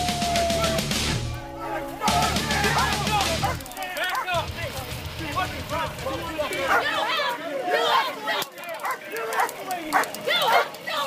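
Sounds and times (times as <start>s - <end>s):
raised voices: 0.0s - 11.0s
dogs barking and yipping: 1.6s - 4.4s, 6.6s - 11.0s.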